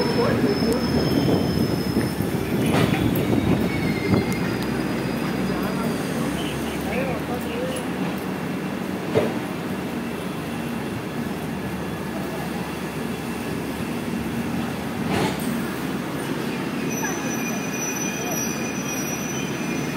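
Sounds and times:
high wheel squeal: 0.0s - 6.8s, 16.2s - 19.9s
train coaches rumbling: 0.0s - 19.9s
train knock: 2.6s - 3.6s.

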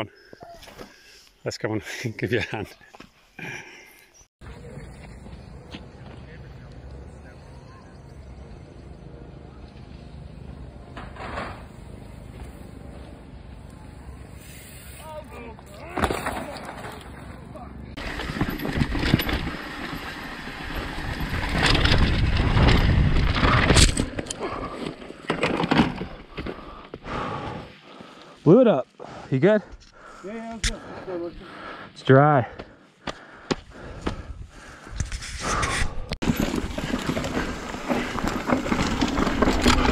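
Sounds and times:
bike tyres on dry dirt: 2.9s - 32.0s, 32.6s - 39.9s
bike crash knocks and scraping: 10.8s - 12.5s, 15.6s - 17.4s, 18.0s - 26.7s, 35.1s - 39.9s
wind buffeting camera: 18.0s - 24.7s.

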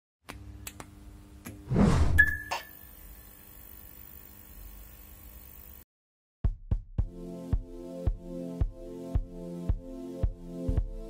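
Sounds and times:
thin high ringing tone: 2.2s - 3.4s.

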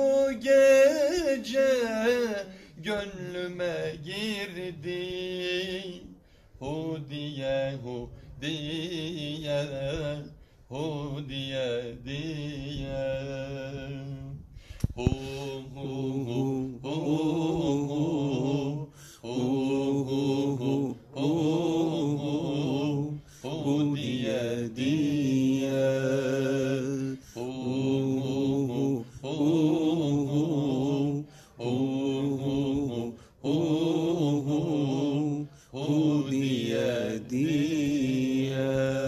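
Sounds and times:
man chanting hymn: 0.0s - 39.0s
man breathing: 2.5s - 2.8s, 6.2s - 6.6s, 10.4s - 10.7s, 14.4s - 15.4s, 18.9s - 19.3s, 23.2s - 23.5s, 27.2s - 27.4s, 31.2s - 31.6s, 35.4s - 35.8s.

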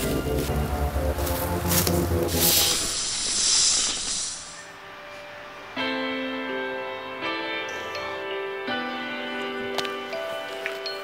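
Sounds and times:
low music: 0.0s - 3.4s
loud hiss: 2.2s - 4.9s.

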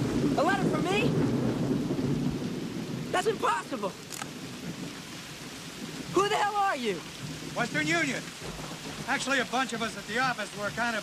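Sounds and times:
heavy rain pouring: 0.0s - 11.0s
thunder rumbling: 0.0s - 11.0s.

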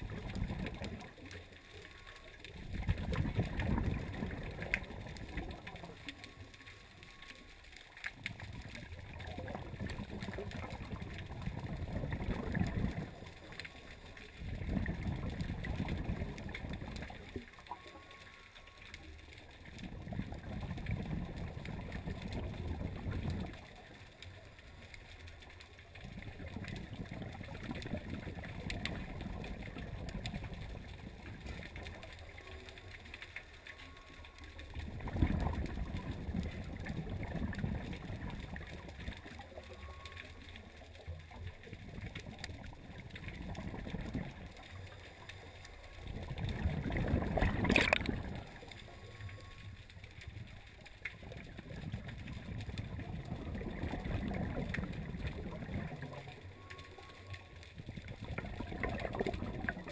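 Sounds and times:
underwater regulator bubbling exhalation: 0.0s - 1.1s, 2.5s - 6.1s, 8.3s - 13.6s, 14.4s - 17.4s, 19.8s - 23.8s, 26.0s - 32.0s, 34.7s - 39.4s, 41.8s - 44.8s, 46.0s - 49.5s, 51.1s - 56.4s, 57.8s - 59.9s.

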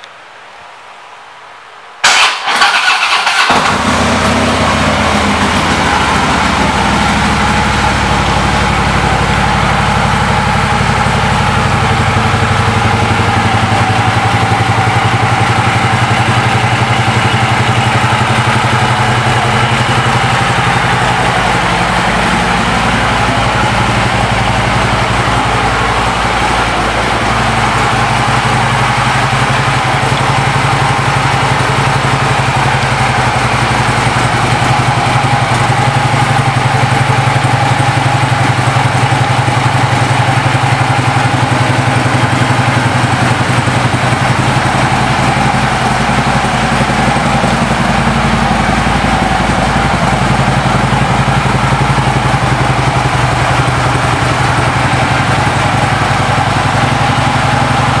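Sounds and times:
motorcycle engine idling: 2.0s - 58.0s.

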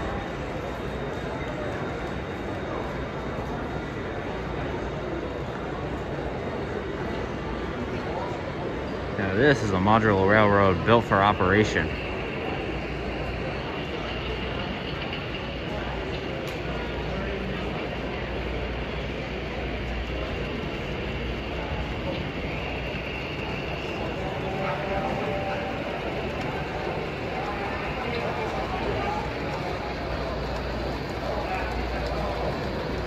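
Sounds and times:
murmur of distant voices: 0.0s - 33.0s.

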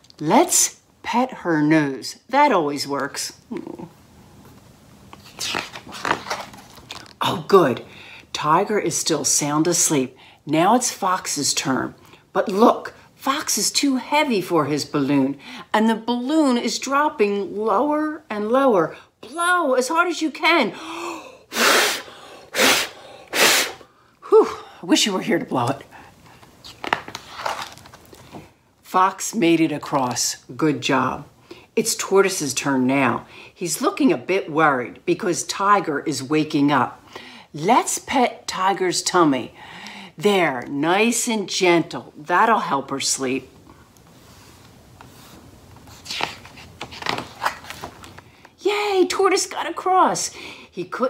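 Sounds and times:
paper pages rustling: 5.2s - 7.2s, 26.4s - 28.4s, 44.4s - 48.3s.

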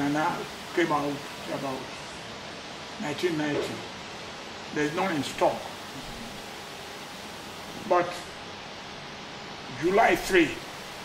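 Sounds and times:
man speaking: 0.0s - 1.9s, 3.0s - 3.9s, 4.7s - 6.4s, 9.7s - 10.7s
background room hiss: 0.0s - 11.0s.

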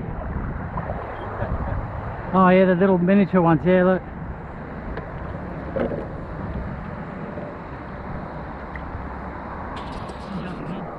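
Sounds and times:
wind rushing over microphone: 0.0s - 10.9s.

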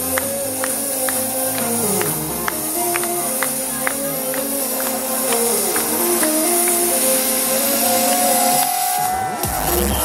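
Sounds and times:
crowd hiss: 0.0s - 10.0s
electronic dance music synth melody: 0.0s - 10.0s.

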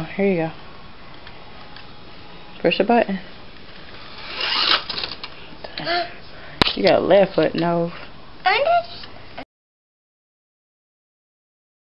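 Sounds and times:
toy slot car whirring and rattling: 4.0s - 5.3s.

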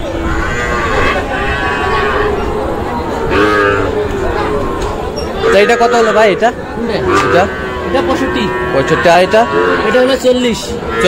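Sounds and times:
people talking: 0.0s - 11.0s
cattle mooing: 0.2s - 11.0s.

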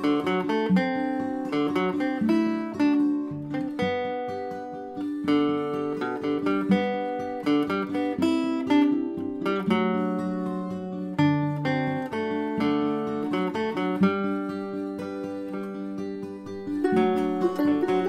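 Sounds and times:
plucked mandolin melody: 0.0s - 18.0s
strummed guitar chords: 0.0s - 18.0s.

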